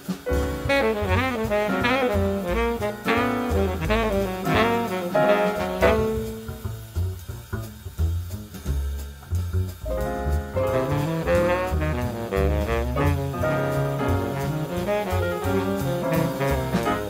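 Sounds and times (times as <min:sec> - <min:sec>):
cymbals: 0:00.0 - 0:17.0
drum kit: 0:00.0 - 0:17.0
piano: 0:00.0 - 0:17.0
upright bass: 0:00.0 - 0:17.0
baritone saxophone: 0:00.5 - 0:06.9, 0:10.6 - 0:17.0.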